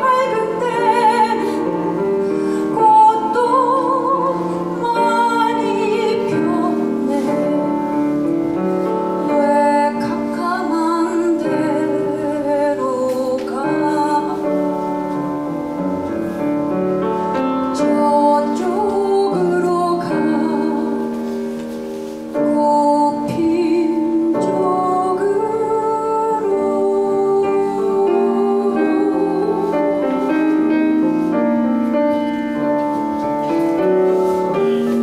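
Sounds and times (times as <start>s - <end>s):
piano accompaniment: 0.0s - 35.0s.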